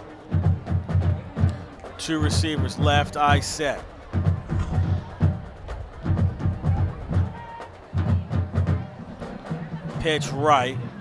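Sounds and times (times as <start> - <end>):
marching band bass drum hits: 2.3 - 9.0.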